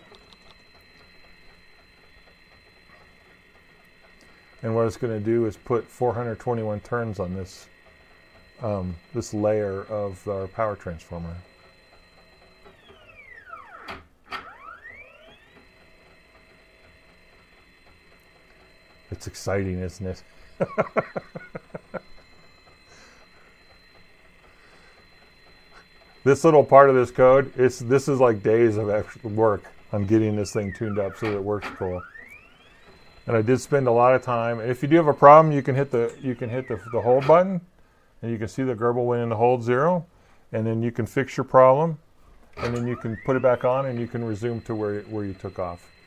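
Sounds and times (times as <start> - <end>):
stepper motor whining: 0.0 - 46.0
man laughing: 20.6 - 22.2.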